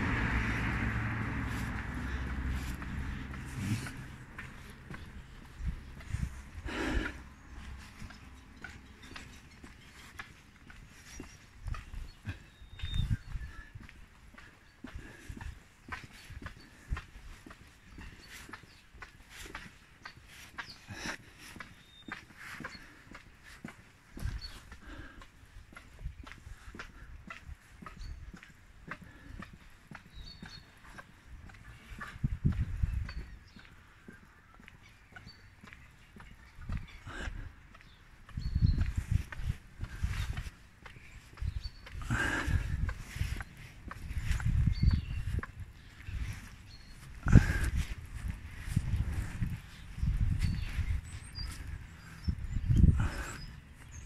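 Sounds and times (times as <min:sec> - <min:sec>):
footsteps on concrete: 0:00.0 - 0:54.0.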